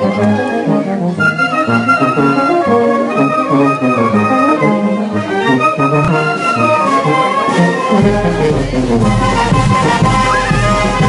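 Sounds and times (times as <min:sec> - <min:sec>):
festival brass band music: 0:00.0 - 0:11.0.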